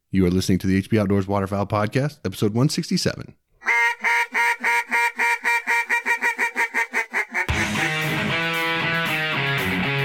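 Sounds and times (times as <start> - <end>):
duck quacks: 3.6 - 8.3
electric guitar music: 7.5 - 10.0.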